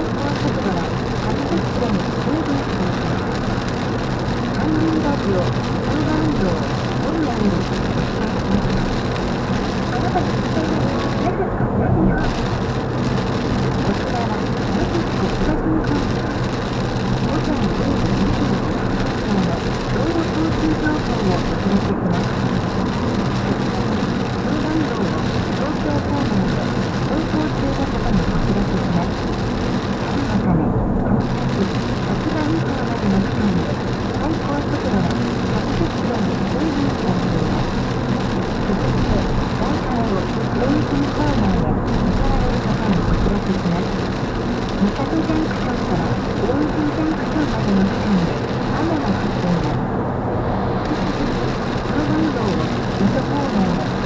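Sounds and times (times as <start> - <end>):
muffled talk: 0.0 - 54.0
road and tyre noise in car: 0.0 - 54.0.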